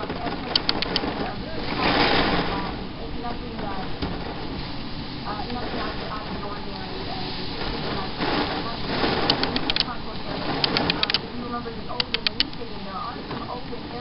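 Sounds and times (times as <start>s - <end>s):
noisy background: 0.0s - 14.0s
television news speech: 0.0s - 14.0s
sharp clicks: 0.2s - 1.3s, 9.1s - 11.3s, 11.9s - 12.7s.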